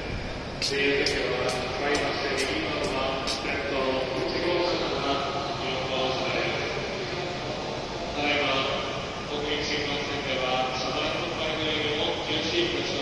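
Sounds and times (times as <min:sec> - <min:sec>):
echoing public address announcement: 0:00.0 - 0:07.5
station background noise: 0:00.0 - 0:13.0.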